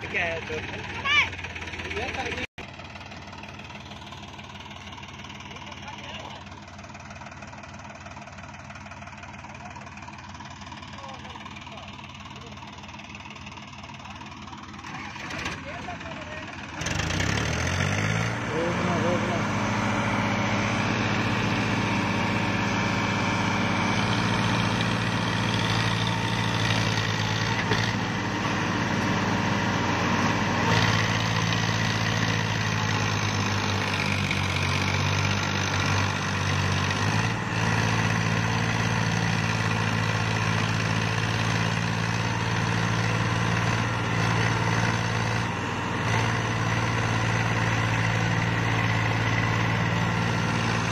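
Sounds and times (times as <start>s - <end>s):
diesel tractor engines running: 0.0s - 50.9s.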